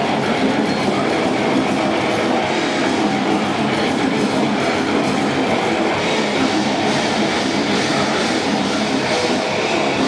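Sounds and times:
distorted guitars: 0.0 - 10.0
rapid drumming on drum kit: 0.0 - 10.0.

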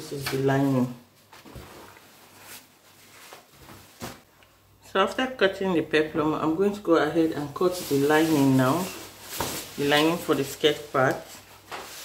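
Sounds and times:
fabric rustling: 0.6 - 4.3, 7.6 - 12.0.

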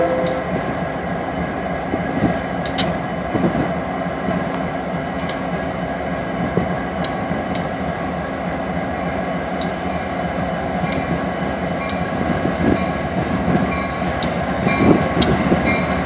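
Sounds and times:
diesel locomotive engine rumble: 0.0 - 16.0.

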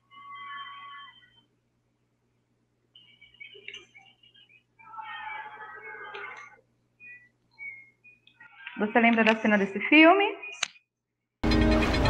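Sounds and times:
high wavering cry-like tones: 0.0 - 1.5, 3.0 - 8.8.

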